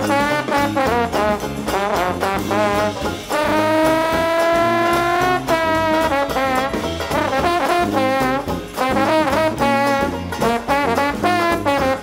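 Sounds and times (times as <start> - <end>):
jazz band with brass: 0.0 - 12.0.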